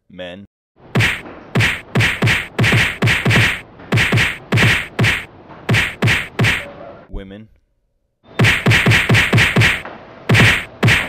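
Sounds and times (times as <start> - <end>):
fight punches and kicks: 1.0 - 6.6, 8.4 - 11.0.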